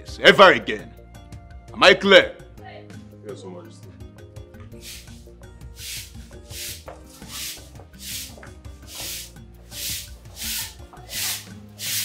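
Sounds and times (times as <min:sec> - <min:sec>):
shaker swishing: 0:04.8 - 0:05.2, 0:05.8 - 0:12.0.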